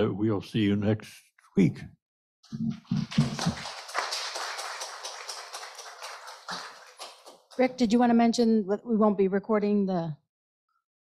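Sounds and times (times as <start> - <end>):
audience applauding: 2.8 - 7.8.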